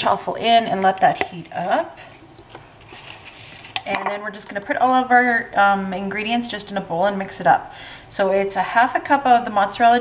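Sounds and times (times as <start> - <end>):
dishes handled on counter: 3.7 - 5.0.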